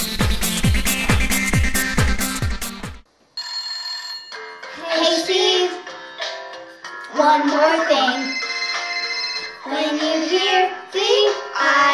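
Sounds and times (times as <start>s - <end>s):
phone ringtone: 3.4s - 4.9s, 7.9s - 9.8s.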